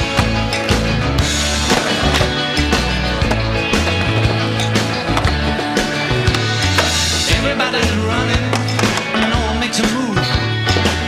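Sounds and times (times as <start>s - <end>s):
skateboard clacking: 0.0s - 10.0s, 10.6s - 11.0s
rock song: 0.0s - 11.0s
skateboard wheels rolling on concrete: 0.0s - 11.0s.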